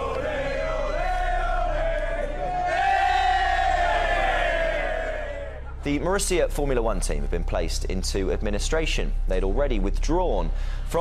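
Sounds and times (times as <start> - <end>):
crowd cheering and shouting: 0.0 - 5.7.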